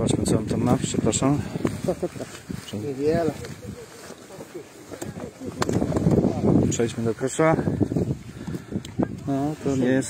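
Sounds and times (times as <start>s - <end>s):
people talking indistinctly: 0.0s - 10.0s
wind rumbling on microphone: 0.0s - 10.0s.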